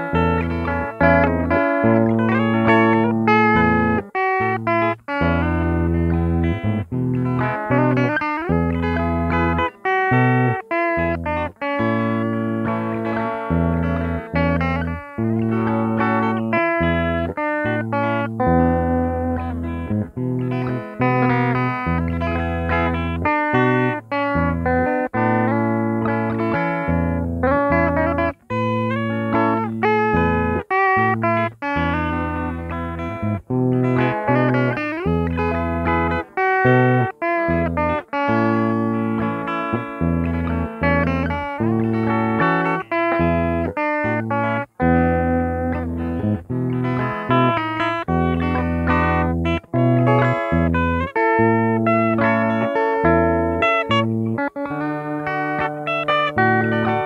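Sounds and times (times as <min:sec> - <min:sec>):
electric guitar lead melody: 0:00.0 - 0:57.0.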